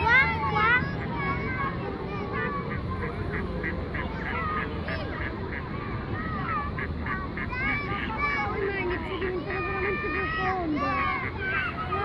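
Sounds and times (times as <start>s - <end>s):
people's voices in background: 0.0s - 12.0s
waterfowl short calls: 2.2s - 12.0s.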